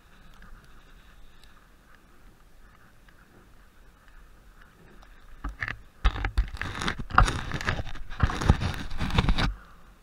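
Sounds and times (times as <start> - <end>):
bike tyres hissing on snow: 0.0 - 5.3.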